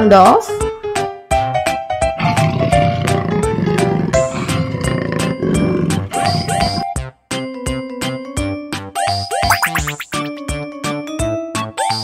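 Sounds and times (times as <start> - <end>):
jaguar growling: 2.2 - 7.0.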